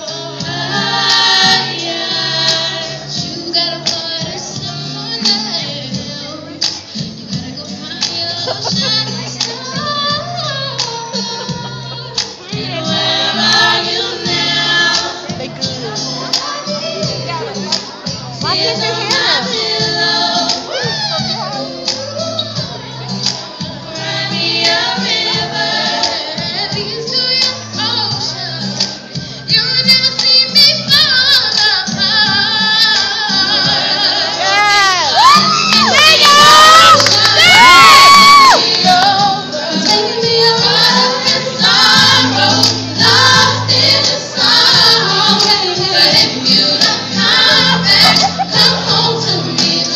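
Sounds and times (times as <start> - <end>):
choir singing in harmony: 0.0 - 6.4, 7.5 - 20.8, 22.4 - 29.6, 31.0 - 35.2, 35.8 - 49.9
whoops and shouts: 34.4 - 38.6.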